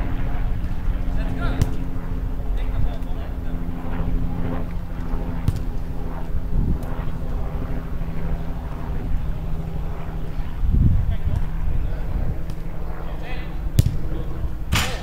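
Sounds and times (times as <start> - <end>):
steady low drone: 0.0 - 15.0
wind on microphone: 3.9 - 13.0.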